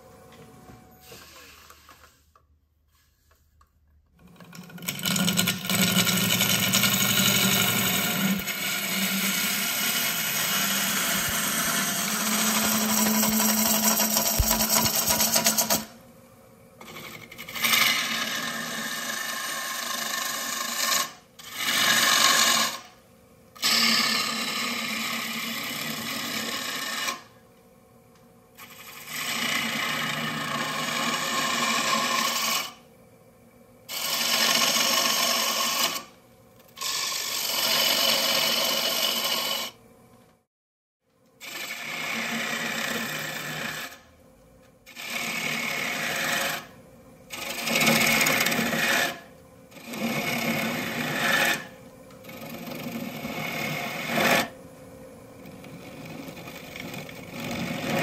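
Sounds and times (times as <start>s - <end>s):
turning tool cutting wood on lathe: 4.2s - 15.9s, 16.8s - 23.0s, 23.6s - 27.3s, 28.6s - 32.8s, 33.9s - 36.1s, 36.8s - 39.8s, 41.4s - 44.0s, 44.9s - 46.7s, 47.3s - 54.6s, 55.4s - 58.0s.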